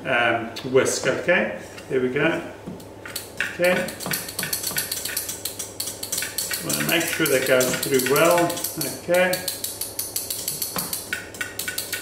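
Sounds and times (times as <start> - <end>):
whisk clicking against metal bowl: 3.0 - 12.0.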